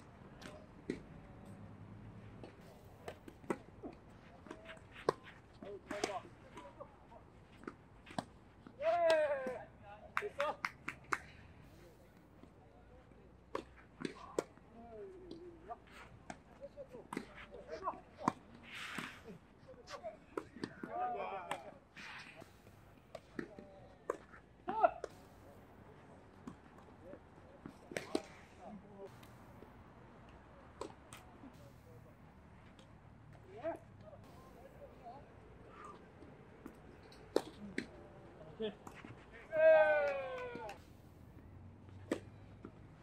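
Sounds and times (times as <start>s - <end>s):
players' voices: 0.0s - 43.0s
tennis balls struck by racquets: 0.1s - 12.5s, 13.3s - 43.0s.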